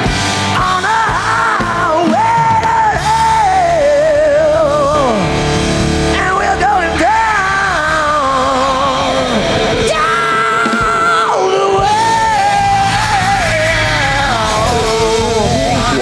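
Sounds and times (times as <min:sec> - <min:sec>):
live rock band playing: 0:00.0 - 0:16.0
man singing high notes: 0:06.1 - 0:16.0.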